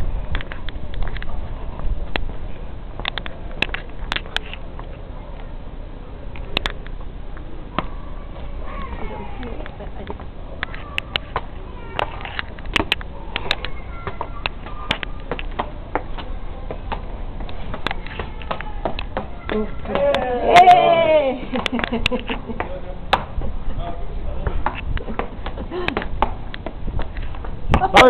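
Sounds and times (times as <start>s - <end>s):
footsteps on stone stairs: 11.0s - 20.4s, 24.4s - 28.0s.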